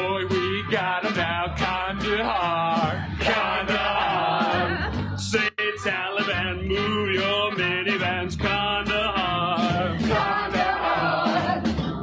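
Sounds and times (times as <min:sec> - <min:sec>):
group singing show tune: 0:00.0 - 0:12.0
musical accompaniment: 0:00.0 - 0:12.0.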